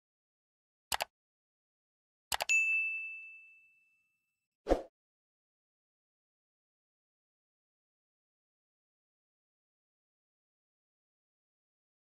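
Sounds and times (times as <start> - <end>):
bright ringing ding: 2.5 - 4.2.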